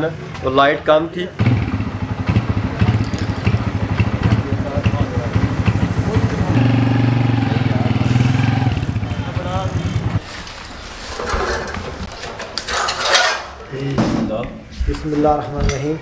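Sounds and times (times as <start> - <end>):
voices: 0.0 - 16.0
motorcycle engine idling: 1.4 - 10.2.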